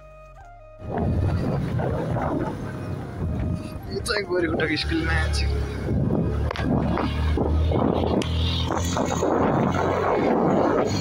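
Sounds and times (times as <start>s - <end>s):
motorcycle engine rumble: 0.0s - 11.0s
wind buffeting microphone: 0.8s - 11.0s.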